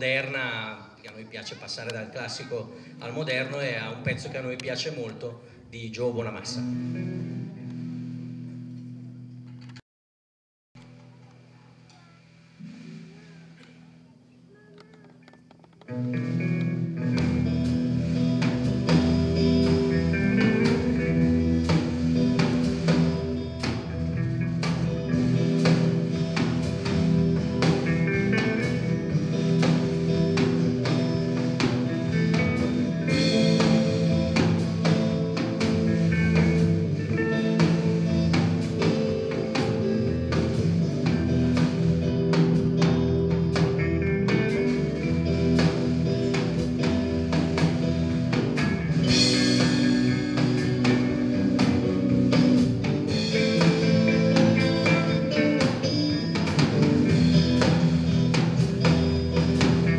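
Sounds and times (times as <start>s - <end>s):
blues-rock band playing: 1.5s - 9.7s, 14.8s - 59.9s.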